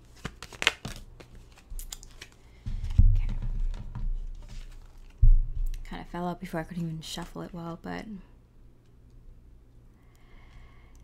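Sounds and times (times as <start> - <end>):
cards being shuffled: 0.0 - 5.8.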